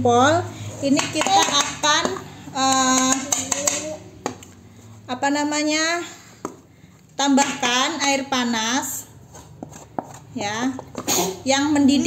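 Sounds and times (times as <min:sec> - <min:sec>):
plastic spatula knocking bowl: 0:00.9 - 0:04.5.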